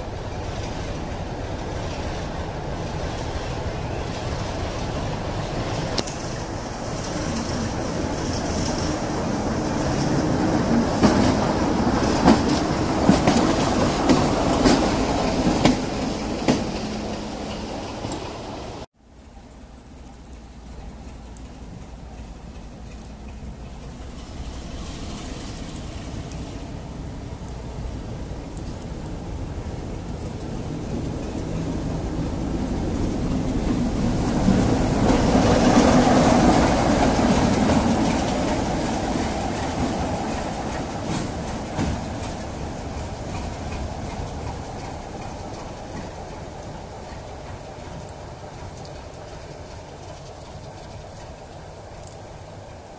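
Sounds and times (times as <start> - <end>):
diesel locomotive engine: 0.0 - 52.9
wheels clicking over rail joints: 0.0 - 52.9.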